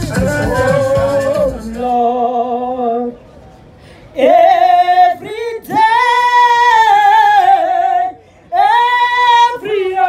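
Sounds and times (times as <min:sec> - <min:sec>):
singer breathing: 0:03.7 - 0:04.2, 0:08.2 - 0:08.6
woman singing into a microphone: 0:04.2 - 0:10.0.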